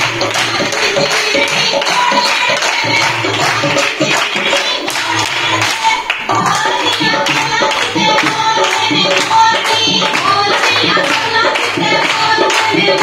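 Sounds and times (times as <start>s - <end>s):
fast percussive folk beat: 0.0s - 13.0s
handclaps: 0.0s - 13.0s.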